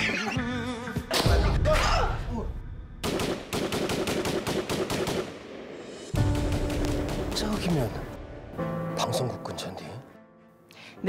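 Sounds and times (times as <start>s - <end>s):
rapid automatic gunfire: 3.0s - 5.3s, 6.2s - 7.9s.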